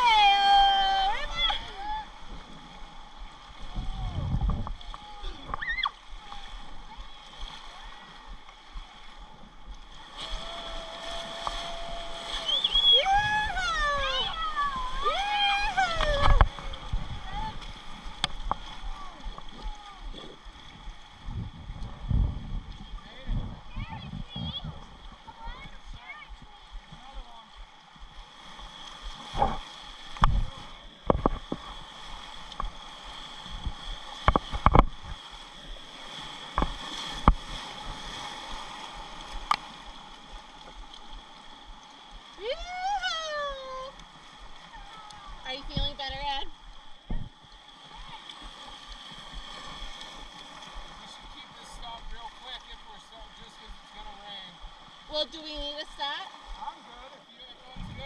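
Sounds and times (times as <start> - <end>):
river water rushing and splashing: 0.0 - 58.0.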